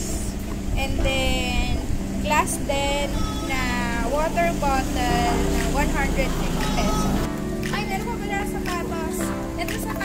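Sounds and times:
person singing: 5.3s - 7.9s.

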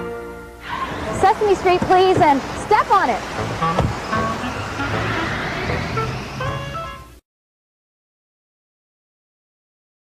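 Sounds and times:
car engine rumbling: 0.6s - 7.2s
music with short pitched notes: 3.3s - 7.2s.

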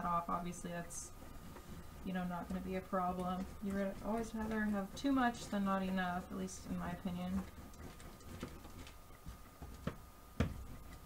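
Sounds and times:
faint rubbing and crinkling: 0.0s - 11.0s.

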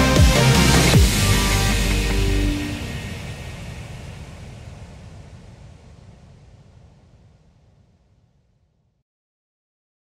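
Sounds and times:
low noisy rumble: 0.0s - 8.8s.

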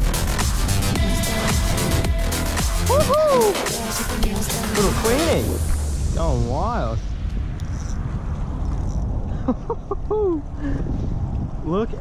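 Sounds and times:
wind buffeting microphone: 5.1s - 12.0s
person laughing exclamation: 9.4s - 10.5s.

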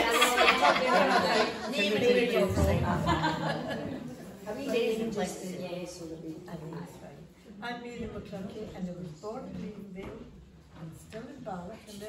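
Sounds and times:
women laughing: 0.0s - 4.3s
women talking: 0.0s - 12.0s.

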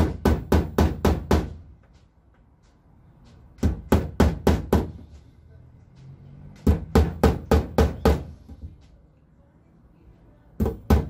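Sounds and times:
hammer tapping on metal: 0.0s - 5.3s, 6.0s - 9.0s.

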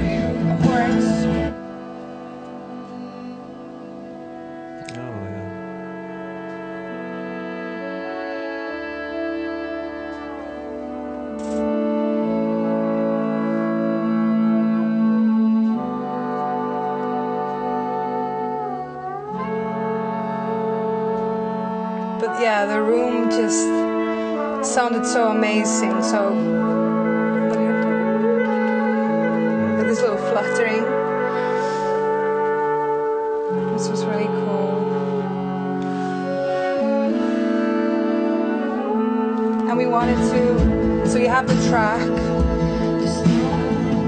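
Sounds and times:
slow brass chords: 0.0s - 44.0s.

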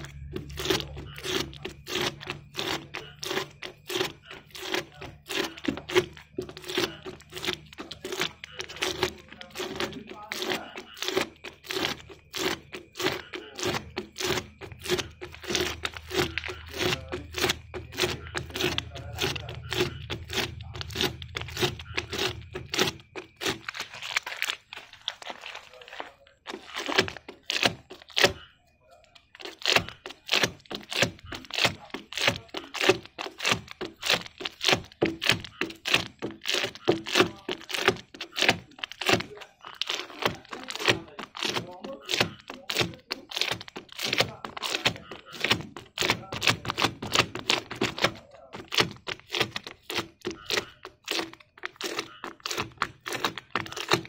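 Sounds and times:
pad scraping plastic lens: 0.0s - 54.0s.

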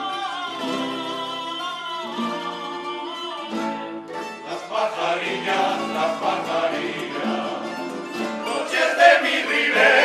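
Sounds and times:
acoustic guitars playing: 0.0s - 10.0s
male choir singing: 4.4s - 10.0s.

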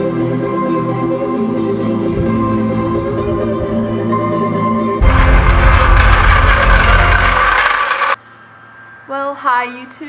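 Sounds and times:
floor jack rolling and clattering: 5.0s - 8.2s.

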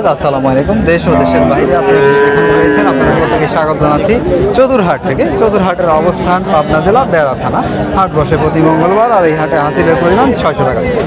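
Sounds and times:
calf mooing: 1.0s - 3.9s, 8.5s - 10.4s.

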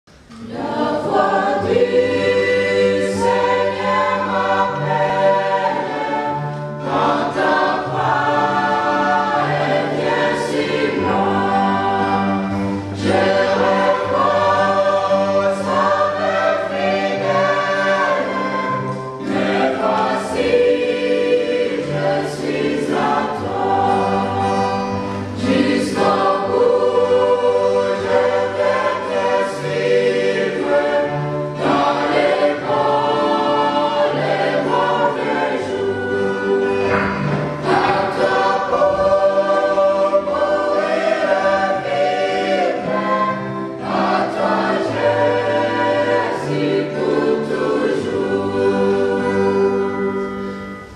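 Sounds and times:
mixed choir singing a hymn: 0.3s - 50.9s.

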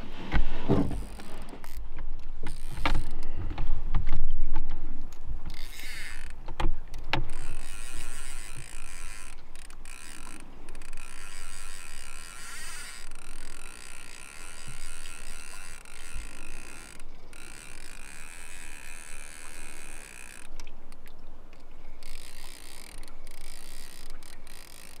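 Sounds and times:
fishing reel gears whirring: 1.0s - 3.4s, 5.4s - 20.6s, 21.9s - 25.0s.

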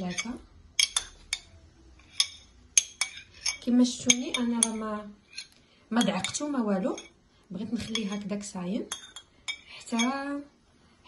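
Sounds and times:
kitchenware clinking on glass dish: 0.0s - 7.2s, 7.8s - 8.3s, 8.9s - 10.2s.

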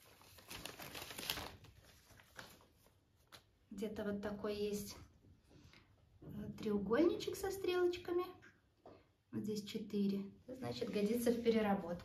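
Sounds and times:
plastic packaging crinkling: 0.0s - 3.4s.

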